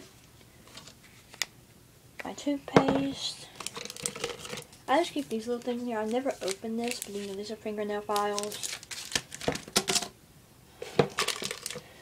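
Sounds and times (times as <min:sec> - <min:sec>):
plastic packaging rustling: 0:03.1 - 0:10.1, 0:10.8 - 0:12.0.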